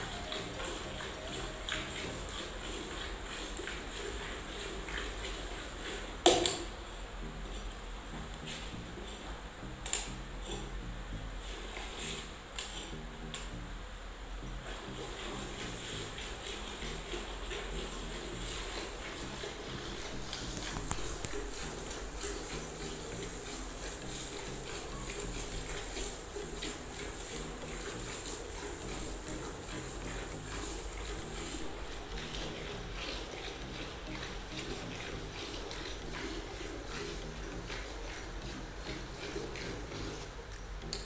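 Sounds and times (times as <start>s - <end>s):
milk squirting into steel pail: 0.2s - 6.6s.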